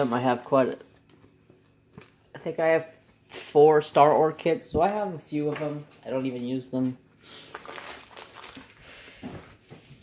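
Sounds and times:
plastic bag rustling: 0:00.0 - 0:00.7, 0:07.4 - 0:10.0
canvas and paper crinkling: 0:07.5 - 0:08.9.

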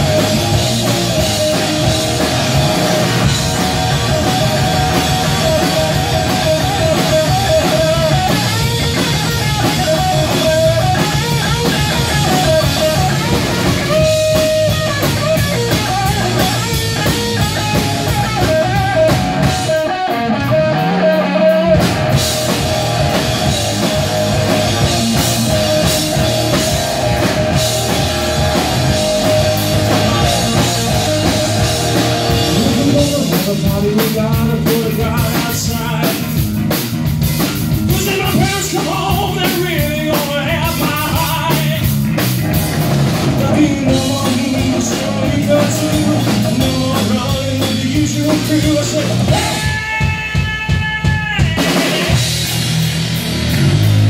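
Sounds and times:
electric guitar lead lines: 0:00.0 - 0:50.8
rock band playing: 0:00.0 - 0:54.0.

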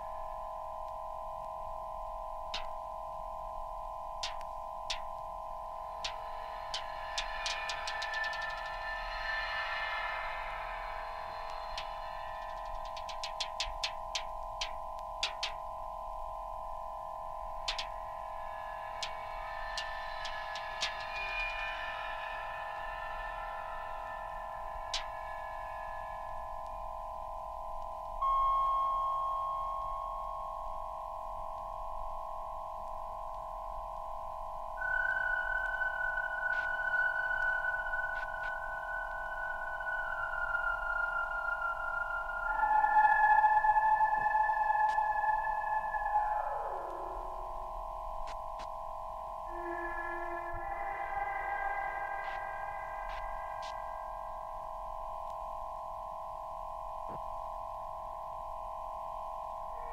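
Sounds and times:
droning electronic tones: 0:00.0 - 0:59.9
high pure tones: 0:05.7 - 0:15.6, 0:34.8 - 0:48.4, 0:49.4 - 0:54.7.

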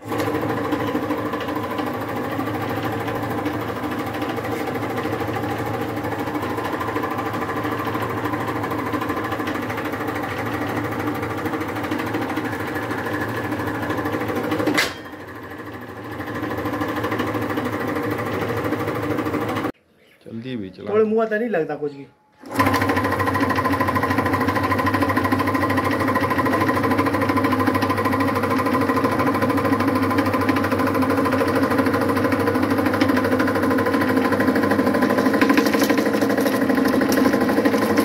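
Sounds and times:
hydraulic press pump whining: 0:00.0 - 0:19.4, 0:22.4 - 0:38.0.

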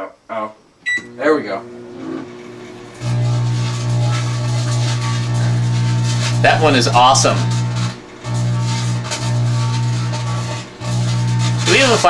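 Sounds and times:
microwave oven electrical hum: 0:00.3 - 0:12.0.

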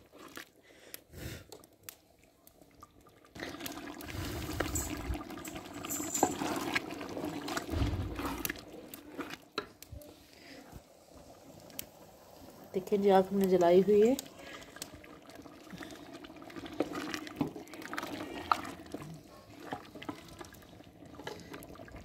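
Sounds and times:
food sizzling in a pot: 0:03.4 - 0:21.9.

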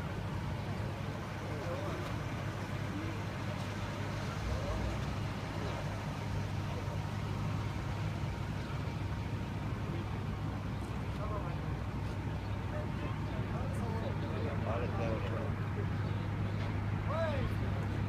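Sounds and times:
car engines idling: 0:00.0 - 0:18.0
murmur of men's voices: 0:00.6 - 0:18.0.

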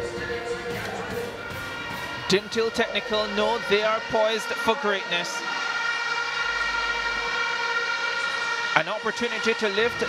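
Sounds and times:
steady drone of held tones: 0:00.0 - 0:10.0.

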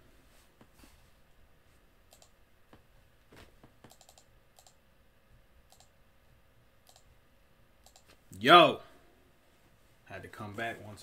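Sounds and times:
computer mouse clicking: 0:02.1 - 0:02.4, 0:03.8 - 0:04.8, 0:05.7 - 0:06.0, 0:06.8 - 0:07.1, 0:07.8 - 0:08.2.

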